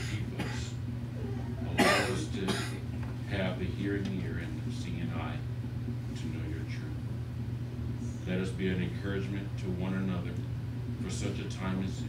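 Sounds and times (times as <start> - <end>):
person coughing: 0.0 - 0.8, 1.6 - 2.8
steady low hum: 0.0 - 12.0.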